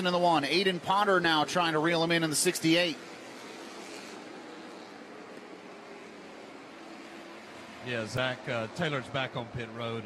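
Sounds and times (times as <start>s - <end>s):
distant race cars humming: 0.0s - 10.0s.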